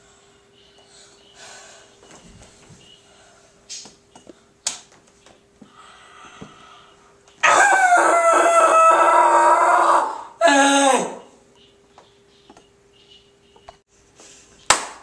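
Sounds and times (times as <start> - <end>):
boy screaming: 7.4 - 11.3.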